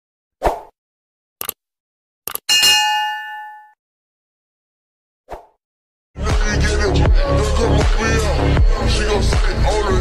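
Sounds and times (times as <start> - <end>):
notification bell ding: 2.5 - 3.8.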